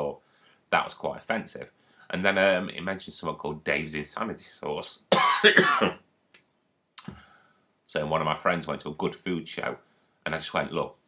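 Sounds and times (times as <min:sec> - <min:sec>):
man coughing: 0:05.1 - 0:06.0.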